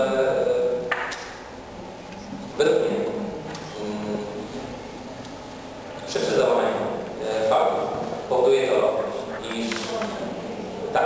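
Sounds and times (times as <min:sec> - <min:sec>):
man speaking in echoing hall: 0:00.0 - 0:01.6, 0:02.2 - 0:05.1, 0:05.7 - 0:11.0.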